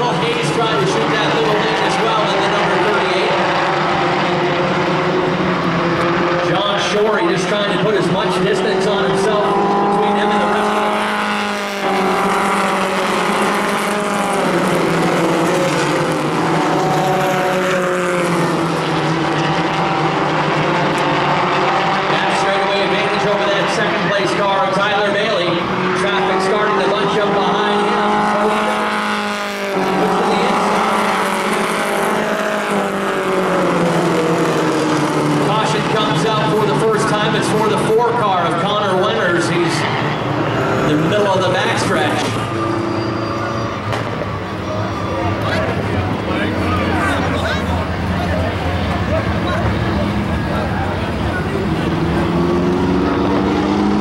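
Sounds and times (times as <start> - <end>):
race car engines at high revs: 0.0 - 54.0.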